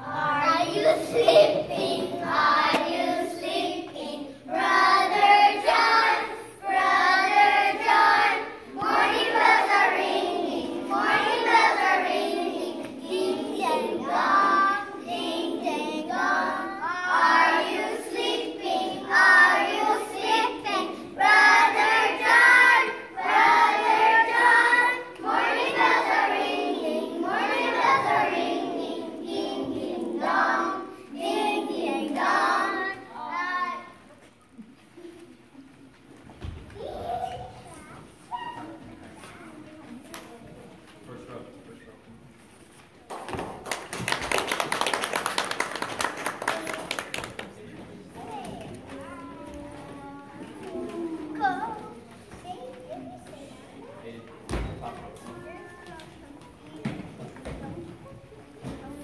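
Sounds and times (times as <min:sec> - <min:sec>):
children singing together: 0:00.0 - 0:34.1.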